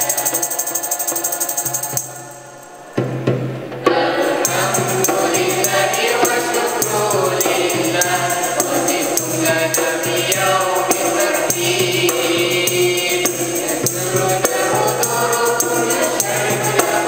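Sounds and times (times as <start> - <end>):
choir singing in unison: 0.0 - 17.0
steady percussion beat: 0.0 - 17.0.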